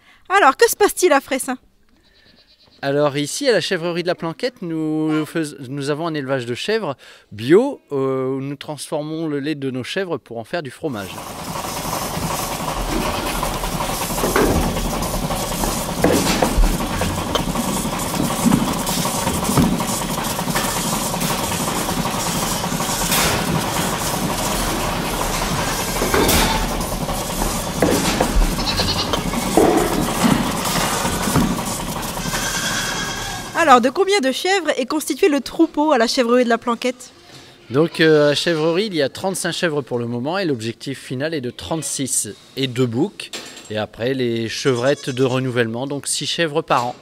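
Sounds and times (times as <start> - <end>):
goats bleating: 12.9 - 13.7, 28.0 - 31.0, 32.1 - 33.6, 44.6 - 45.4.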